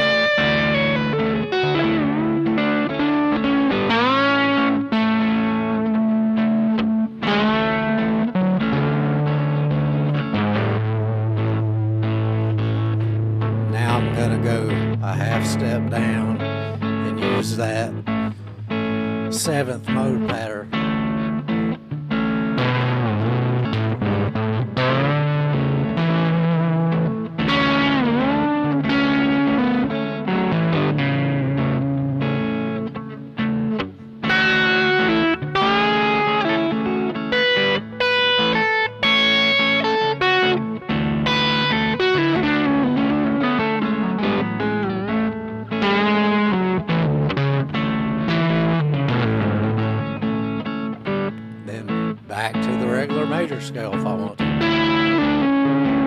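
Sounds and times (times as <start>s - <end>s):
electric guitar lead with bends: 0.0s - 56.0s
looped chord backing: 0.0s - 56.0s.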